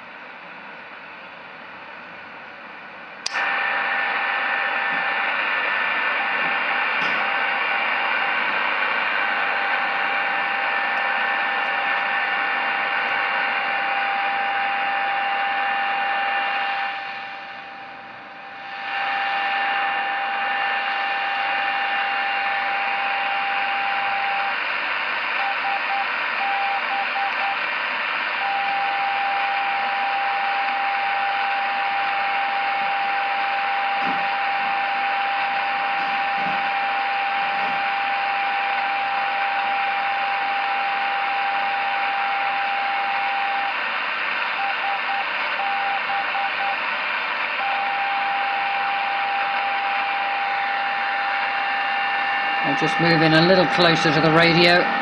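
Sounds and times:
radio hiss: 0:03.4 - 0:17.7, 0:18.5 - 0:55.0
steady radio beacon tone: 0:03.4 - 0:55.0.

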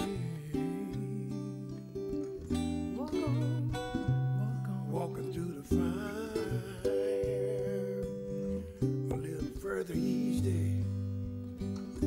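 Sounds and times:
blues guitars playing: 0:00.0 - 0:12.0.

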